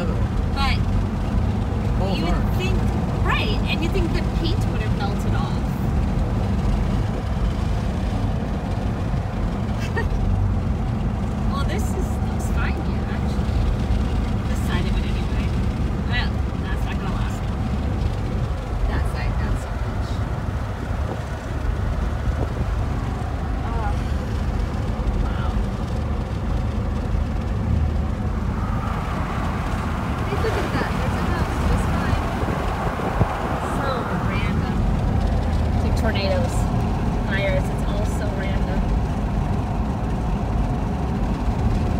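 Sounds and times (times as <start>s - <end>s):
car engine and tyres rumbling: 0.0s - 41.9s.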